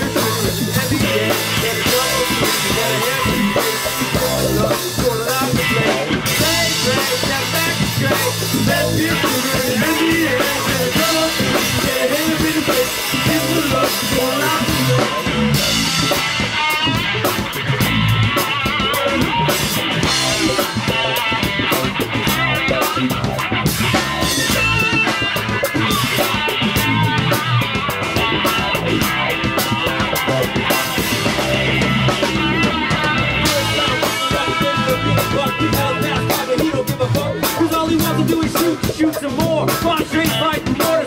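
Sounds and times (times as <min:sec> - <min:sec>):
bass guitar: 0:00.0 - 0:41.0
drum kit: 0:00.0 - 0:41.0
electric guitar: 0:00.0 - 0:41.0.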